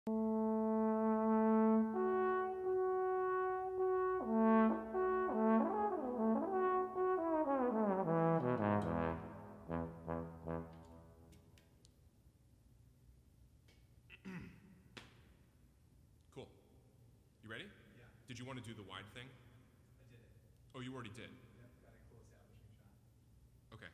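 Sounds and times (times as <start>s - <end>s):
trombone melody: 0.0s - 11.4s.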